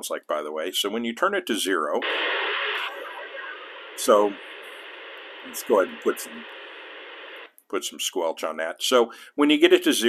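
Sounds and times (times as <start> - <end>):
radio static hissing: 2.0 - 7.5.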